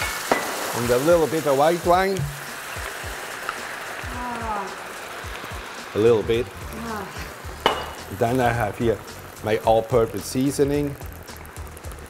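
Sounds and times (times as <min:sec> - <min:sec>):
mussels sizzling in a pan: 0:00.0 - 0:12.0
person speaking: 0:06.2 - 0:07.3.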